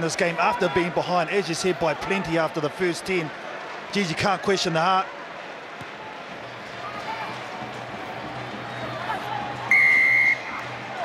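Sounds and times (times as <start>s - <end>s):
stadium crowd murmur: 0.0s - 11.0s
referee's whistle blast: 9.7s - 10.5s.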